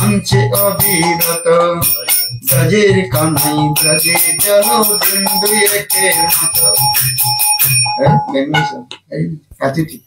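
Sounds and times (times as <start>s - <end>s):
man singing: 0.0s - 7.4s
hand cymbals ringing: 0.0s - 8.8s
man speaking: 8.0s - 10.0s.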